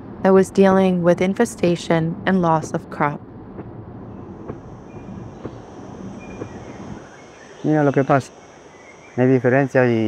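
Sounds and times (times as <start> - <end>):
road and engine rumble in car: 0.0 - 7.0
faint knocks: 4.4 - 7.0.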